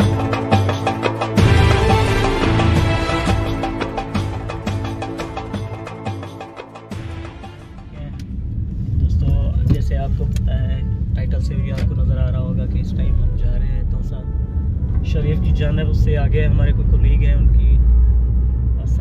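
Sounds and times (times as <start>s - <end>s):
man talking: 7.8s - 8.3s, 9.0s - 14.4s, 15.0s - 17.8s
car cabin rumble: 8.0s - 18.2s.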